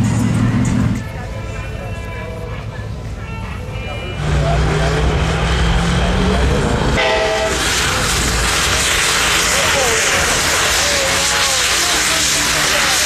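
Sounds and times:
background music: 0.0s - 7.1s
spinning tyres hissing: 0.0s - 13.0s
horn blast: 3.8s - 13.0s
truck engine at high revs: 4.1s - 13.0s.

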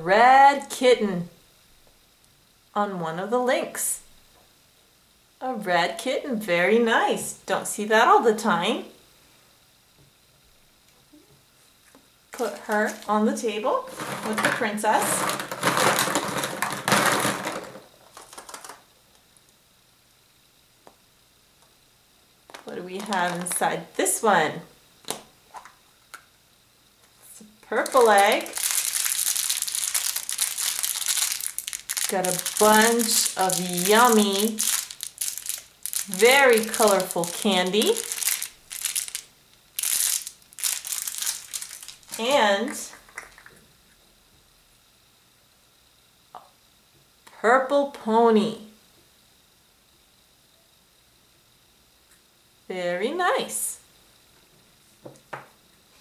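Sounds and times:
plastic candy packet crinkling: 13.9s - 18.8s, 22.5s - 23.8s, 27.7s - 43.5s
plastic eggs clattering in a bowl: 13.9s - 18.8s, 22.5s - 23.7s, 27.8s - 43.6s.

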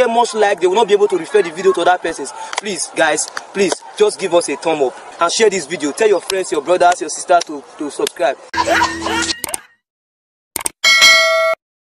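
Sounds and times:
bright bell ding: 10.8s - 11.6s.

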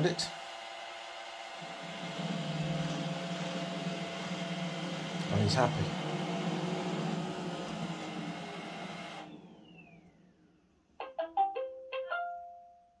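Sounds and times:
robot vacuum motors whining: 0.0s - 10.5s.

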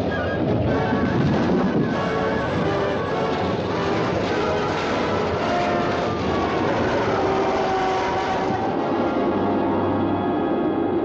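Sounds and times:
propeller aircraft drone: 0.0s - 11.0s
rushing noise: 0.0s - 11.0s.

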